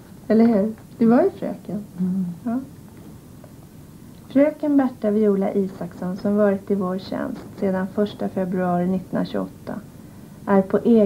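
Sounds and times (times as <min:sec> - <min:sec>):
woman humming: 0:01.9 - 0:02.7.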